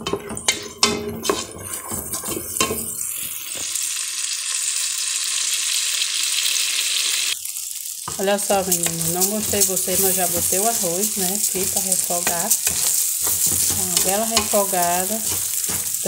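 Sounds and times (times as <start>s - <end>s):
wooden spoon knocking metal pot: 0.0s - 3.0s, 8.1s - 16.0s
hot fat sizzling: 0.0s - 16.0s.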